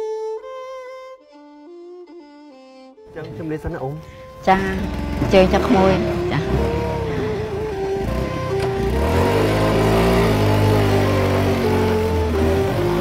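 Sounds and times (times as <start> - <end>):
background music: 0.0 - 13.0
motorcycle engine revving: 3.1 - 13.0.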